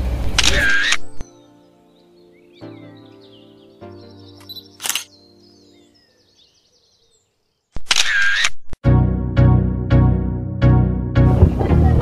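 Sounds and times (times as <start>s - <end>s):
camera shutter sound effect: 0.3s - 1.2s, 4.4s - 5.1s, 7.8s - 8.8s
music with steady beat: 8.9s - 12.0s.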